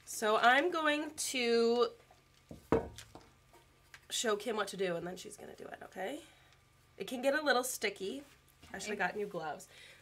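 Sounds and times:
hard object knocking on table: 2.5 - 3.3.

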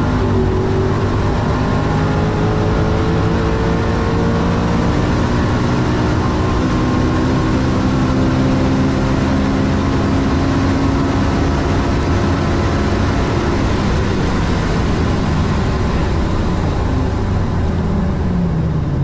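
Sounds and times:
car engine at full throttle: 0.0 - 19.0
wind noise: 0.0 - 19.0.

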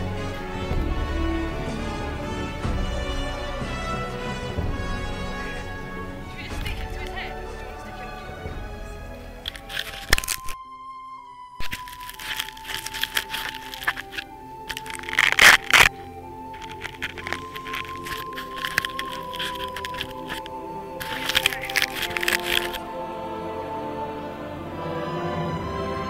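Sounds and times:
instrumental music with held notes: 0.0 - 26.0
camera handling crackling and rustling: 9.4 - 10.6, 11.6 - 22.8.

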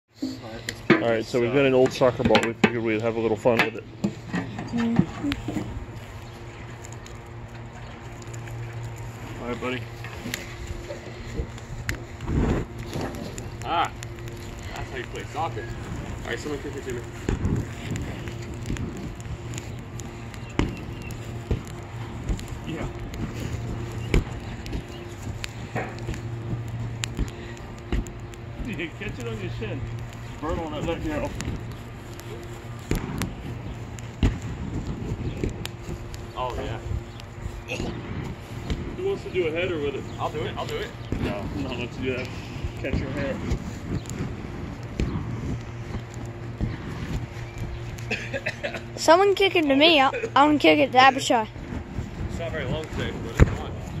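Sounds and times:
steady low hum: 0.1 - 54.0
voices: 0.2 - 34.2, 34.8 - 54.0
wind buffeting microphone: 0.7 - 54.0.

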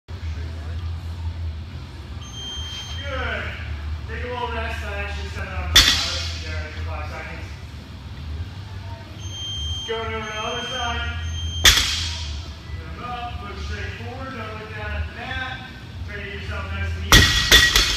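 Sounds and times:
steady low hum: 0.1 - 17.9.

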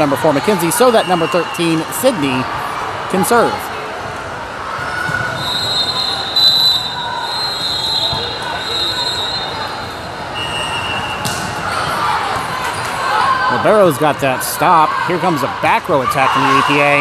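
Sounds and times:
people chattering: 0.0 - 17.0
referee whistle: 5.4 - 9.7, 10.3 - 11.4.

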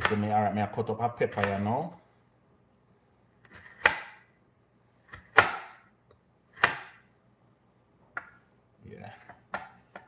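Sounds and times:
knife chopping on wooden board: 0.0 - 0.3, 1.3 - 1.8, 3.4 - 4.3, 5.0 - 5.9, 6.5 - 7.1.

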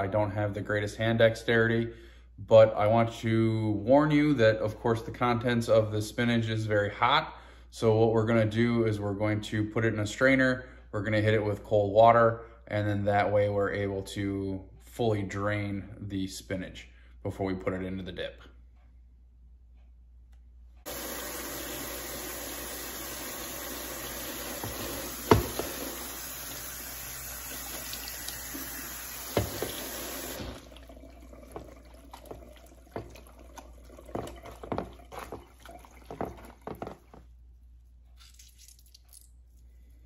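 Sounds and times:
faucet running water: 20.9 - 37.2
sharp knocks: 24.6 - 25.9
wet spinach handled and squeezed: 37.8 - 39.8.

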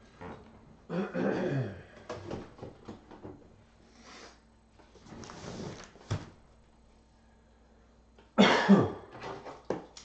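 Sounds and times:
person coughing: 0.9 - 1.9, 8.4 - 9.1.

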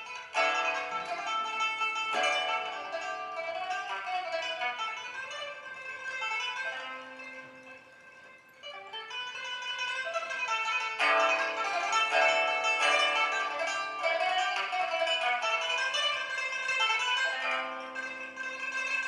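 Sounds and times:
plucked lute melody: 0.0 - 19.0.

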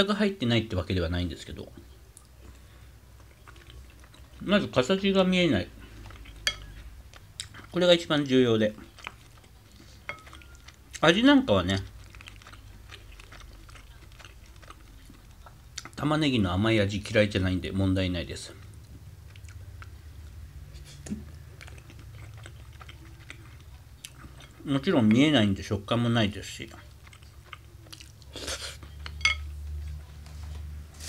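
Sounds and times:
person chewing food: 1.8 - 16.1, 18.4 - 25.4, 26.4 - 30.4.

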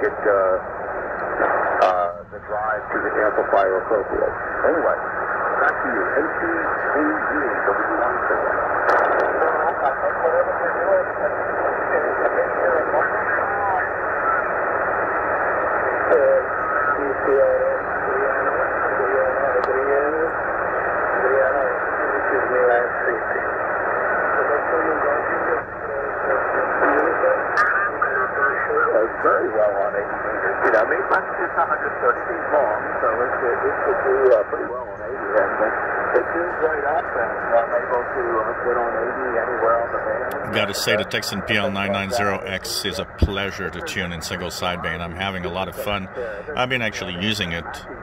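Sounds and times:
radio band hiss: 0.0 - 48.0
warbling radio voices: 1.3 - 14.7, 21.1 - 48.0.

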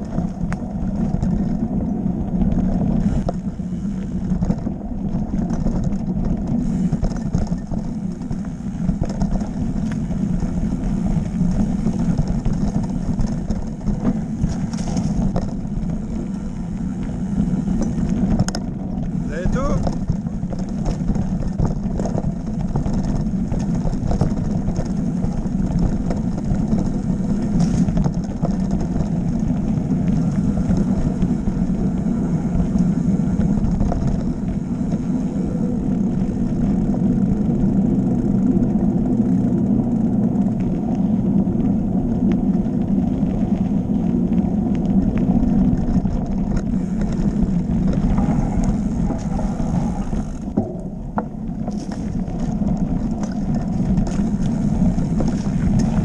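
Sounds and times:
bike clicks and knocks: 0.0 - 56.0
bike tyres rumbling on dirt: 0.0 - 56.0.

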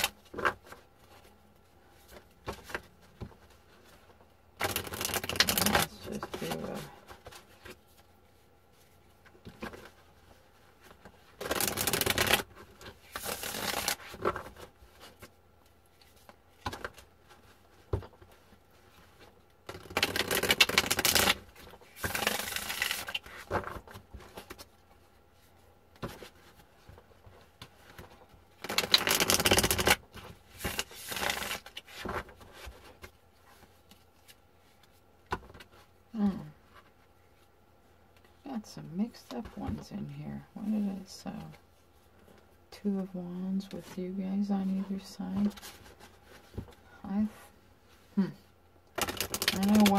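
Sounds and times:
cards being riffle-shuffled: 4.6 - 8.0, 8.8 - 15.3, 16.0 - 24.7, 26.0 - 35.8, 48.9 - 49.9.

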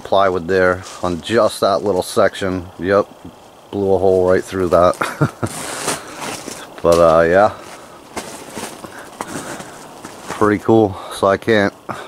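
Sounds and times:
man laughing breathily: 5.0 - 6.1.

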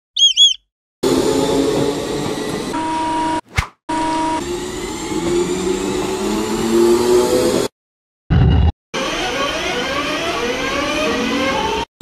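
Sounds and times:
warbling chirps: 0.2 - 0.6.

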